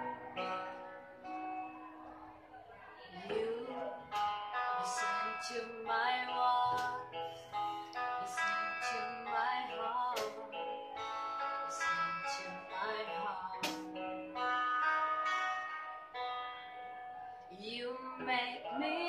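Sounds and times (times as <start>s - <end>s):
woman singing: 0.0s - 1.8s, 3.0s - 14.9s, 17.5s - 19.0s
two electric guitars playing: 0.0s - 2.4s, 3.2s - 19.0s.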